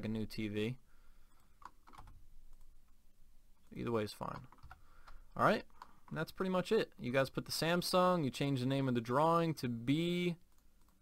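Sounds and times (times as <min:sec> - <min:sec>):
keyboard and mouse clicks: 0:01.4 - 0:03.0, 0:04.2 - 0:06.3, 0:10.4 - 0:11.0.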